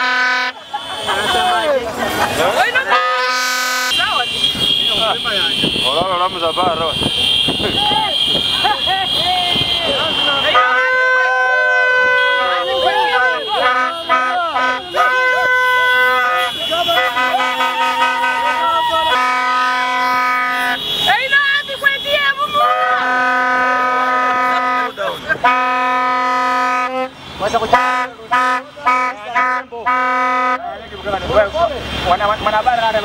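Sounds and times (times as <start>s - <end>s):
lower horn blasts: 0.0s - 0.6s, 2.8s - 30.6s
higher-pitched horn blasts: 0.0s - 0.9s, 2.8s - 30.6s
crowd shouting: 0.0s - 4.4s, 7.2s - 27.0s.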